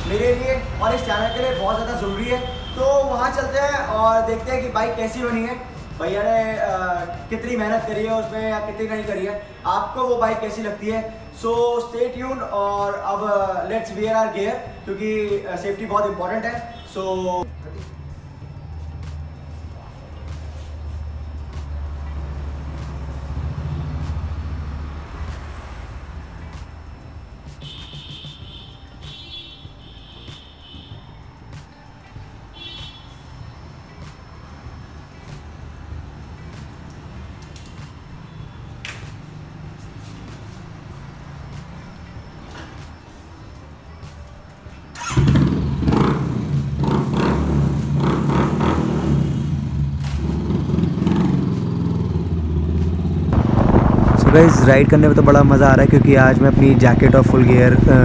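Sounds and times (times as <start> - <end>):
road noise: 0.0 - 58.0
motorcycle engine at speed: 45.1 - 58.0
low hum: 52.8 - 57.0.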